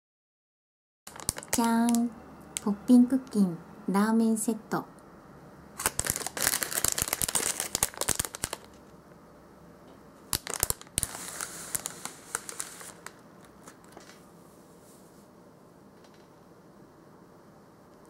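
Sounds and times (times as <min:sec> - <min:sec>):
plastic wrapper crinkling: 0:01.1 - 0:02.7, 0:05.8 - 0:08.9, 0:10.3 - 0:14.2.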